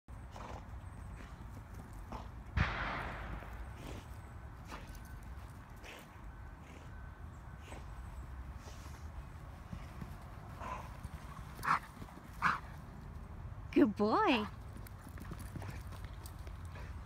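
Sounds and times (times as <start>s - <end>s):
loud thump: 2.6s - 4.0s.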